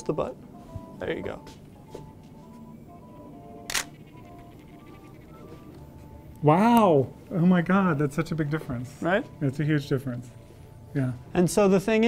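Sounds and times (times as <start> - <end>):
soft background music: 0.0 - 12.0
camera shutter click: 3.7 - 4.0.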